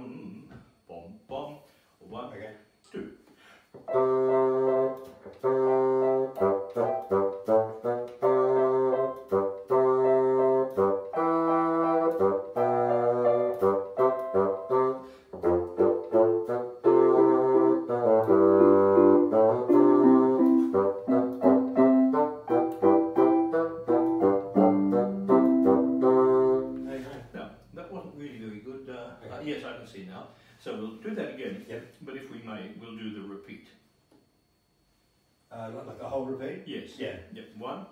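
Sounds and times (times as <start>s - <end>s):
electronic keyboard piano sound: 3.9s - 26.9s
bassoon playing dance tune: 3.9s - 27.2s.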